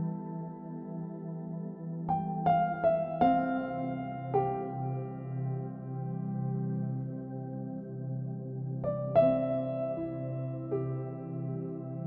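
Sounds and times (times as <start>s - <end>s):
soft piano lullaby: 0.0s - 12.0s.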